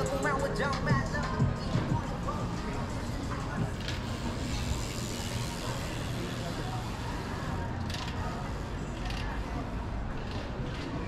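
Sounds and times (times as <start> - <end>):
low street rumble: 0.0 - 11.0
murmur of passers-by talking: 0.0 - 11.0.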